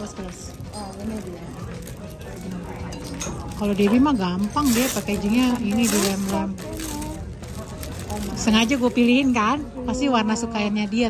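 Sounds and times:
plastic bag crinkling: 0:00.0 - 0:02.8, 0:03.4 - 0:09.2
background music: 0:00.0 - 0:11.0.

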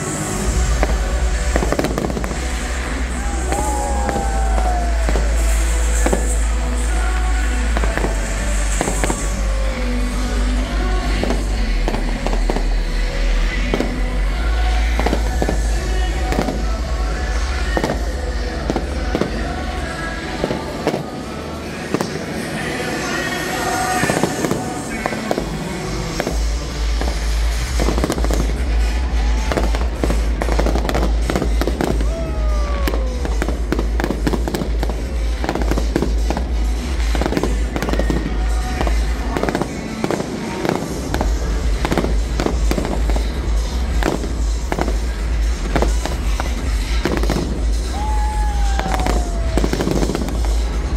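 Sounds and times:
fireworks bangs and crackles: 0:00.0 - 0:50.9.

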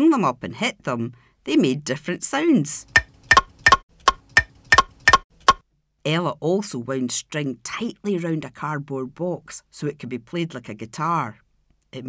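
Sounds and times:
wooden bars struck: 0:03.0 - 0:05.6.

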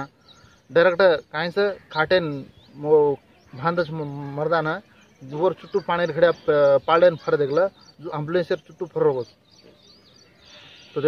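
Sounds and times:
man talking: 0:00.7 - 0:09.4
faint bird call: 0:09.2 - 0:11.0.

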